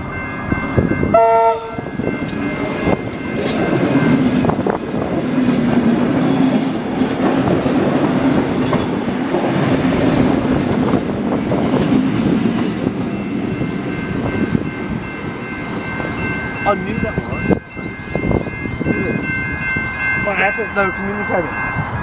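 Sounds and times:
electric train rumble: 0.0s - 22.0s
train wheels clicking on track: 2.0s - 15.0s.

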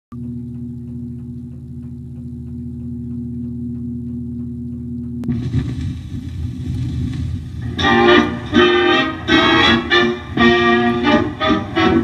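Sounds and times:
light regular ticking: 0.1s - 5.3s
record changer hum: 0.1s - 12.0s.

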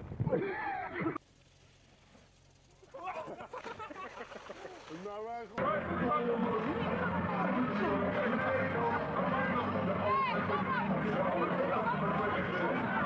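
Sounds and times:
people shouting and exclaiming: 5.6s - 13.0s.

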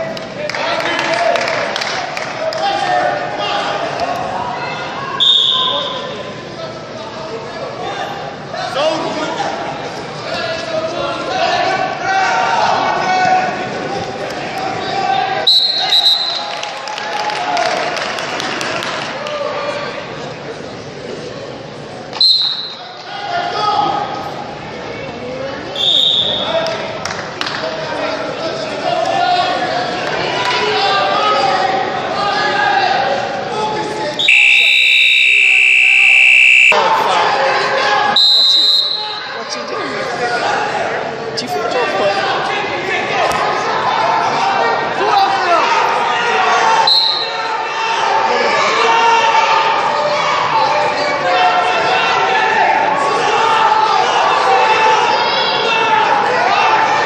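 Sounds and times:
shorter higher steady tone: 34.2s - 36.8s
voices calling out: 34.2s - 37.3s
timer buzzer steady tone: 34.3s - 36.8s.

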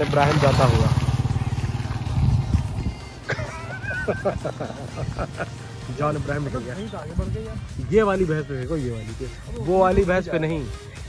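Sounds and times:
motorcycle passing by: 0.0s - 7.8s.

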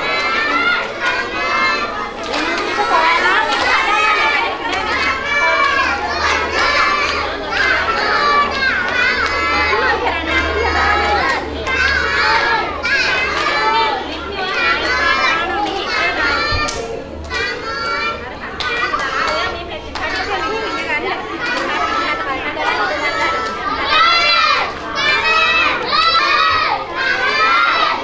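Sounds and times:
children chattering in a hall: 0.0s - 28.0s.

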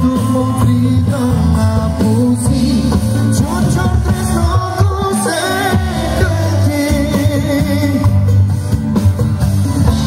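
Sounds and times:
singer's lead vocal: 0.0s - 9.0s, 9.6s - 10.0s
live band playing: 0.0s - 10.0s.

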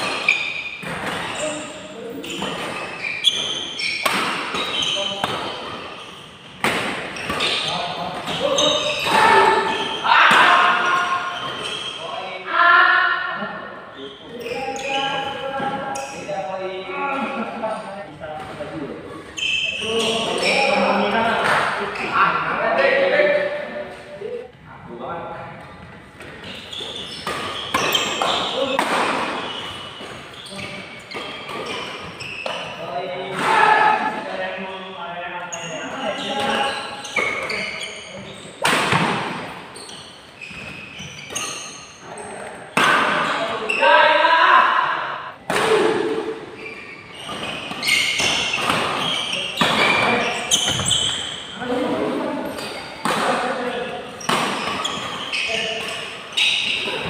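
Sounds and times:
rackets hitting shuttlecock: 2.4s - 5.9s, 38.6s - 39.6s, 47.2s - 51.3s.

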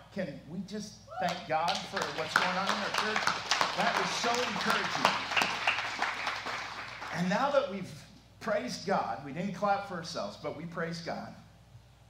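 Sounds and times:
congregation applauding: 1.3s - 7.6s.

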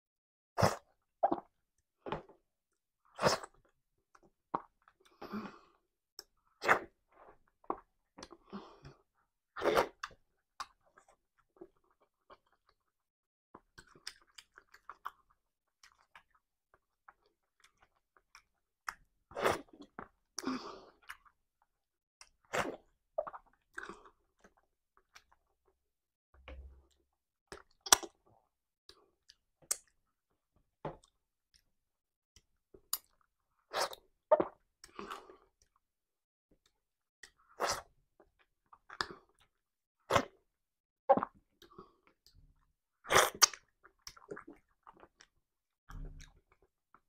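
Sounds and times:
person chewing food: 13.6s - 21.4s, 43.1s - 45.4s.

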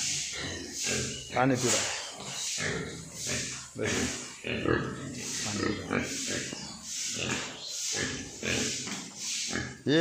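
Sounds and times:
pigs grunting: 0.0s - 10.0s.

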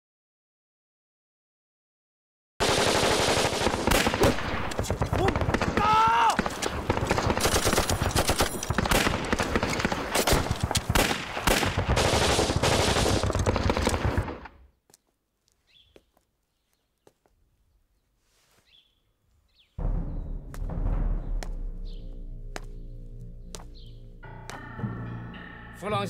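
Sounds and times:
rapid gunfire: 2.6s - 14.6s
person shouting: 5.2s - 6.4s.

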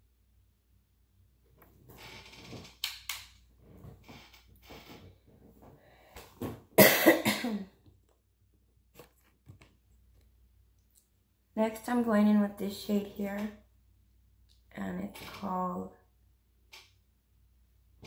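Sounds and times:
woman clearing her throat: 6.8s - 7.7s
woman coughing: 6.8s - 7.7s.

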